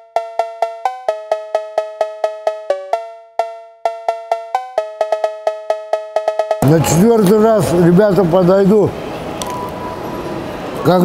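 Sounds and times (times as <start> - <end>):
bouncy cowbell-like tune: 0.0 - 6.6.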